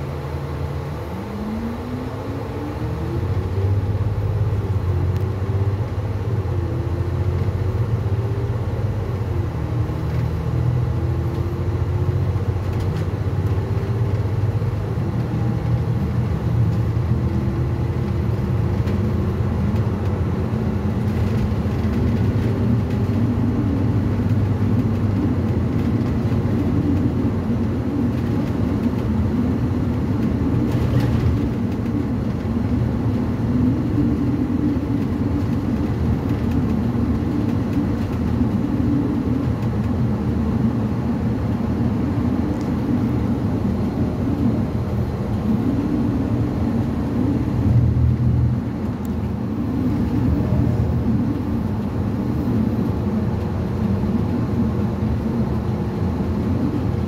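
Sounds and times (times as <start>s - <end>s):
bus engine drone: 0.0s - 57.0s
road rumble: 0.0s - 57.0s
faint rising whine: 24.8s - 57.0s.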